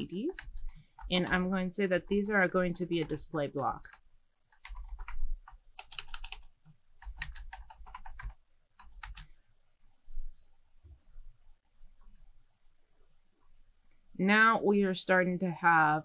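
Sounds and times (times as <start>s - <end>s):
typing on computer keyboard: 0.3s - 1.6s, 3.0s - 9.4s.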